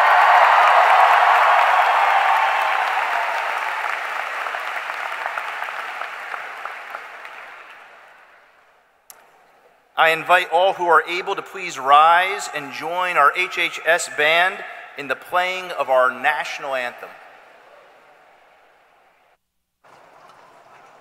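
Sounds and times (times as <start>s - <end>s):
audience applause: 0.0s - 8.4s.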